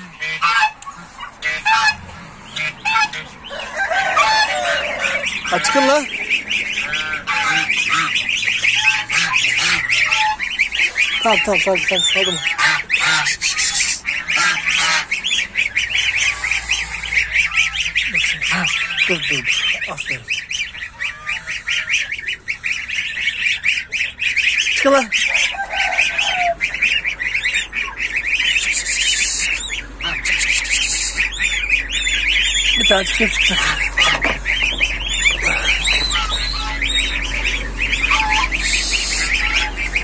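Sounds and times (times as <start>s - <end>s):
goslings peeping: 0.0s - 40.0s
lower falling calls: 0.0s - 40.0s.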